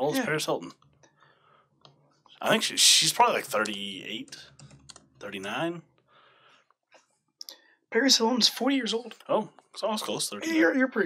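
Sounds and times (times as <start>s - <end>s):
man talking: 0.0s - 0.8s, 2.4s - 4.6s, 5.2s - 5.9s, 7.9s - 11.0s.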